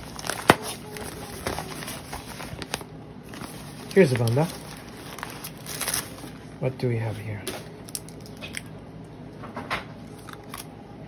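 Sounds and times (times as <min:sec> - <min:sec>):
newspaper crinkling: 0:00.0 - 0:06.6.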